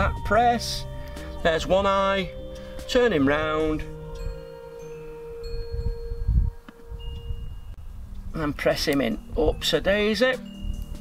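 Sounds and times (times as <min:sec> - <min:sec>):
chime-like ringing tones: 0:00.0 - 0:11.0.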